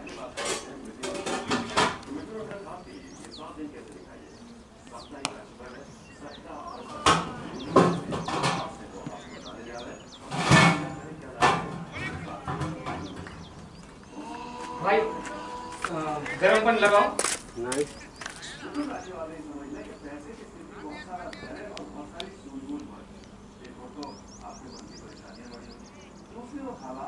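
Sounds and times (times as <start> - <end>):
birds chirping faintly: 0.0 - 27.0
players shouting: 14.1 - 16.6.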